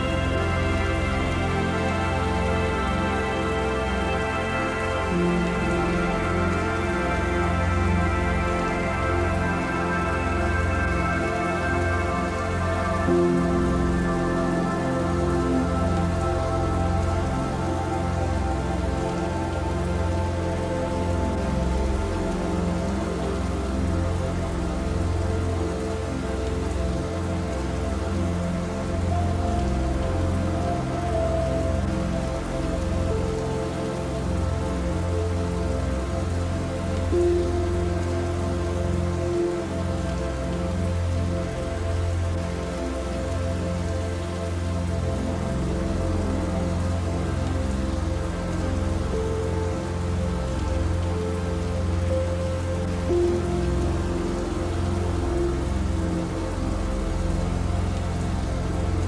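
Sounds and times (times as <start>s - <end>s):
soft relaxation music: 0.0s - 59.0s
steady rain falling: 0.0s - 59.0s.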